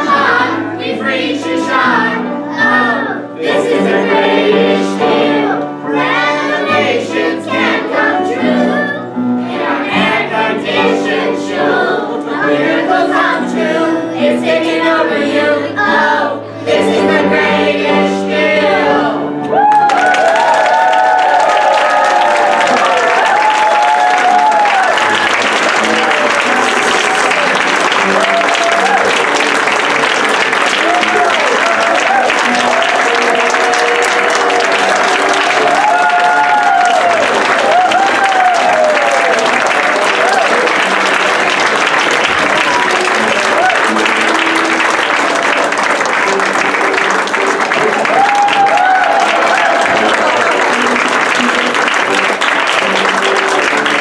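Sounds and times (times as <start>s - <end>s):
music playing: 0.0s - 54.0s
audience applauding: 19.5s - 54.0s.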